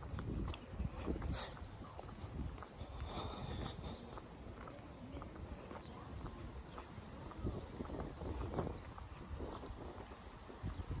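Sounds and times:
faint footstep clicks: 0.0s - 11.0s
wind rumble on microphone: 0.0s - 11.0s.

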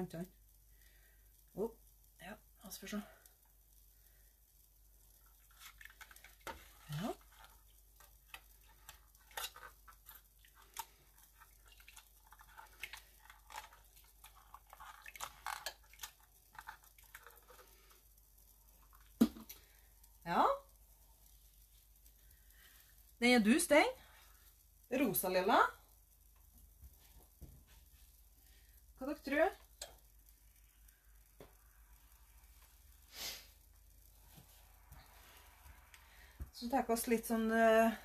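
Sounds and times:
dye pouring: 4.9s - 23.2s
wet yarn squishing: 5.2s - 17.8s.

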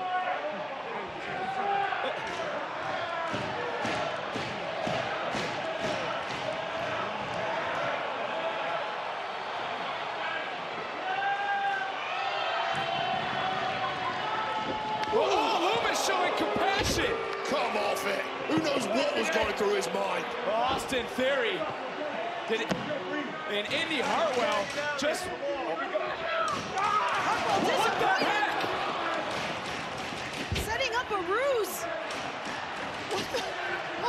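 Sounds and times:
crowd shouting: 0.0s - 34.0s.

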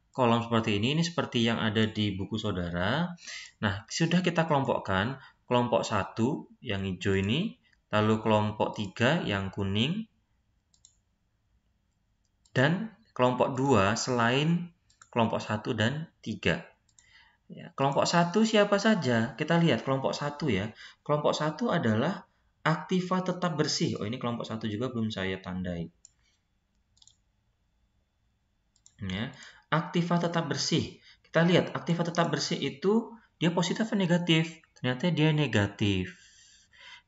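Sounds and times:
faint computer mouse clicks: 10.7s - 11.0s, 26.0s - 27.2s
computer mouse clicks: 10.7s - 11.1s, 14.8s - 15.2s, 16.8s - 17.2s, 26.0s - 27.3s, 28.7s - 29.4s.

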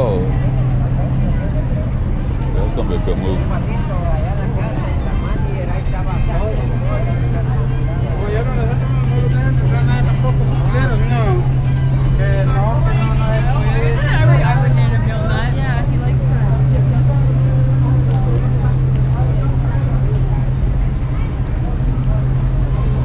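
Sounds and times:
low hum of street traffic: 0.0s - 23.0s
passersby talking: 0.0s - 23.0s.

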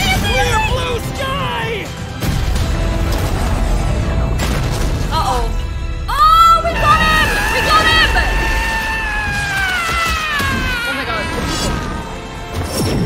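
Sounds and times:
dramatic music: 0.0s - 13.0s
crash: 2.2s - 5.2s.

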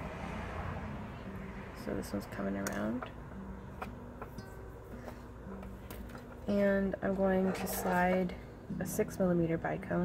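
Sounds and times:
plucked string background music: 0.2s - 10.0s.

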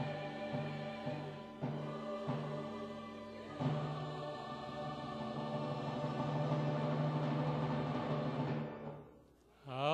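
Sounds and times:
choir singing with instruments: 0.0s - 9.9s.

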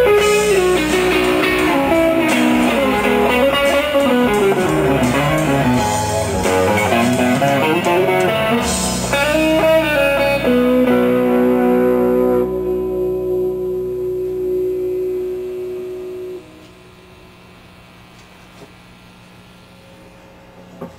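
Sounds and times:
electric guitar through amplifier: 0.0s - 20.9s
faint steady amplifier hum: 0.0s - 20.9s.

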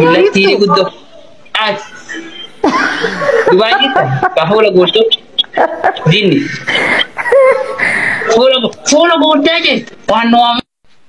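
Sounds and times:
person laughing: 0.0s - 1.0s, 1.8s - 4.6s, 5.4s - 8.4s.

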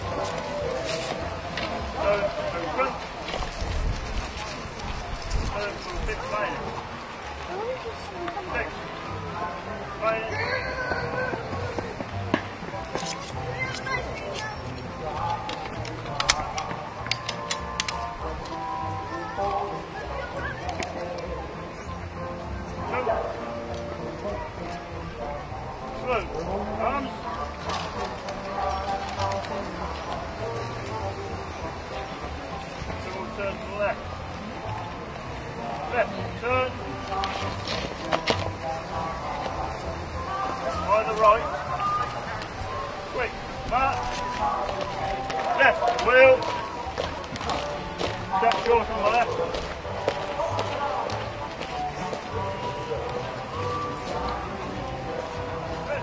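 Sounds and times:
background music: 0.0s - 56.0s
background voices: 0.0s - 56.0s
people chattering: 0.0s - 56.0s.

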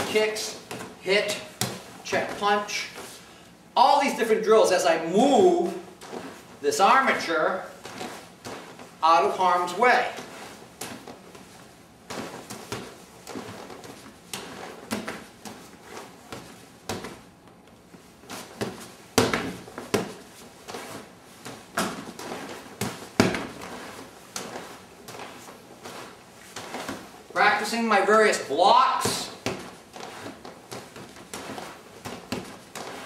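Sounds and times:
hands slapping punching bag: 18.4s - 27.1s, 28.9s - 33.0s.

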